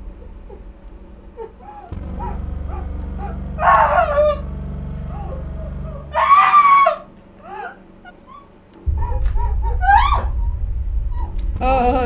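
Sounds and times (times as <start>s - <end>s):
low steady drone: 0.0s - 12.0s
woman screaming: 6.1s - 7.8s, 9.7s - 10.4s.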